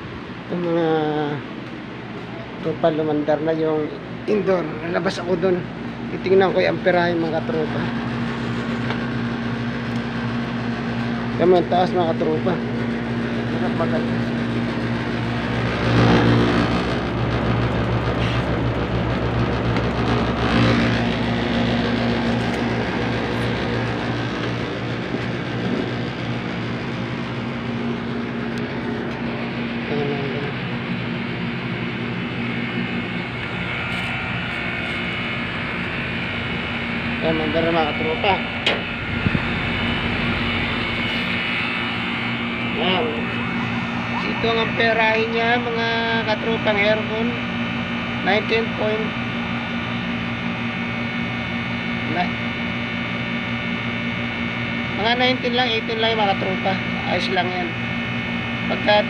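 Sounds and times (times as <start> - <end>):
air conditioner unit humming: 0.0 - 59.0.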